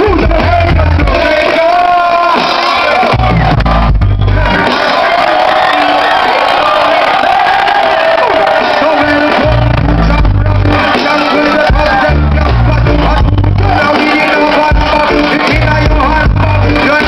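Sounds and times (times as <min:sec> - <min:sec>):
heavy bass notes: 0:00.0 - 0:01.8, 0:02.8 - 0:05.2, 0:08.3 - 0:17.0
audience cheering: 0:00.0 - 0:17.0
live reggae band: 0:00.0 - 0:17.0.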